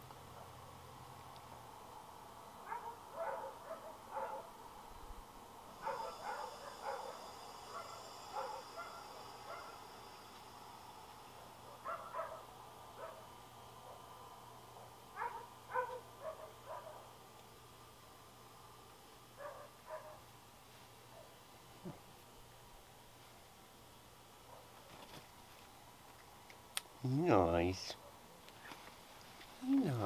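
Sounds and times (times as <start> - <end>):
roosters clucking: 5.8 - 10.0.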